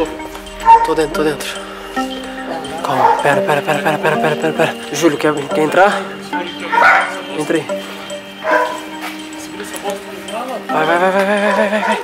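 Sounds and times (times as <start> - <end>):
background music with held tones: 0.0 - 12.0
dog barking: 0.6 - 1.0, 3.0 - 3.4, 6.7 - 7.2, 8.4 - 8.9.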